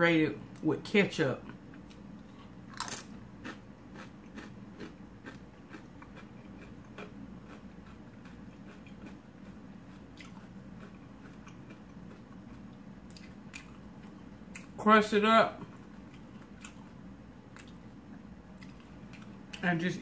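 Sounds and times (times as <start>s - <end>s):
crunchy chewing: 1.7s - 14.8s, 15.6s - 19.7s
tortilla chip crunching: 2.7s - 14.8s.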